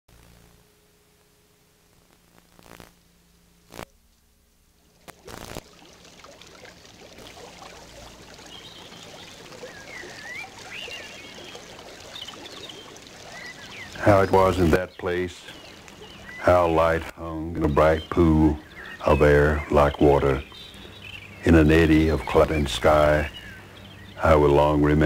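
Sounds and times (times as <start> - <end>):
creek splashing over rocks: 4.8 - 25.0.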